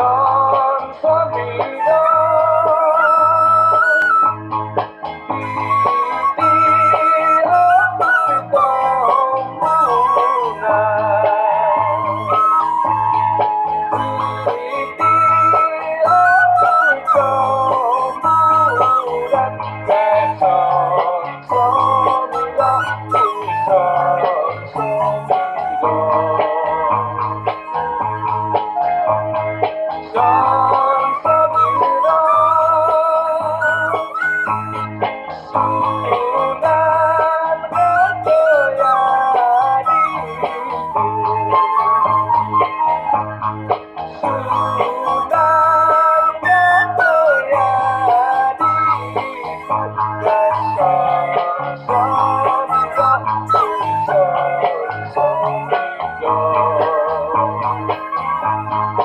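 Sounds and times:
backing music with low beat: 0:00.0 - 0:59.0
bamboo flute melody: 0:00.0 - 0:59.0.

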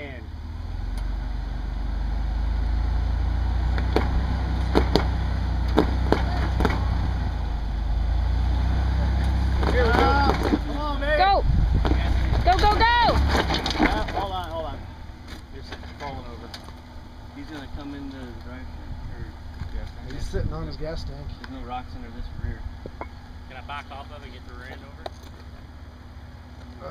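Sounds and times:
truck engine pulling under load: 0:00.3 - 0:26.9
sharp knocks: 0:03.8 - 0:07.0
excited voices calling: 0:08.9 - 0:14.9.

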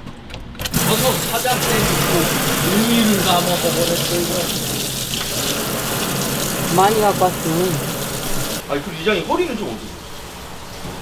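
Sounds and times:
tap water running into sink: 0:00.6 - 0:08.6
mushrooms rinsed by hand: 0:00.7 - 0:11.0.

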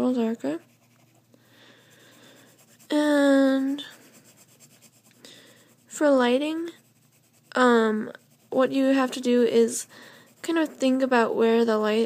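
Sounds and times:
pencil scratching on paper: 0:00.0 - 0:11.3.

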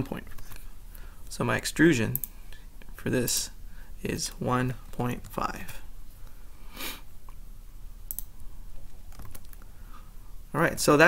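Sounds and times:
low steady hum: 0:00.0 - 0:11.0
short breath: 0:00.9 - 0:01.2, 0:06.4 - 0:07.1
computer mouse and keyboard clicks: 0:08.1 - 0:08.3, 0:09.1 - 0:09.7.

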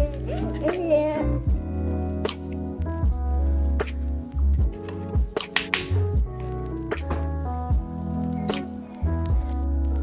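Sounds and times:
music with deep bass and clicks: 0:00.0 - 0:10.0.

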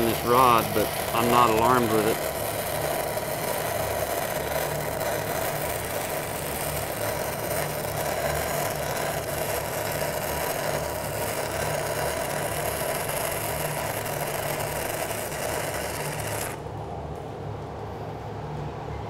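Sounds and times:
welding arc crackling: 0:00.0 - 0:16.7.

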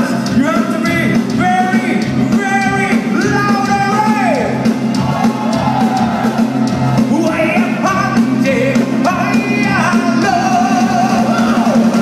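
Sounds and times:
live metal band playing: 0:00.0 - 0:12.0.

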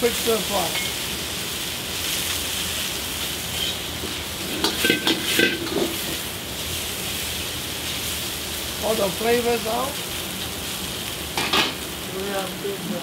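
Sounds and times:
meat sizzling in a wok: 0:00.0 - 0:13.0
metal ladle scraping a wok: 0:03.5 - 0:06.2.

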